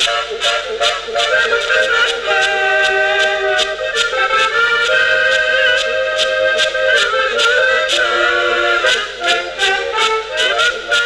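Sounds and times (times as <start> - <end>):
horns playing folk tune: 0.0 - 11.0
steady rhythmic pulse: 0.0 - 11.0.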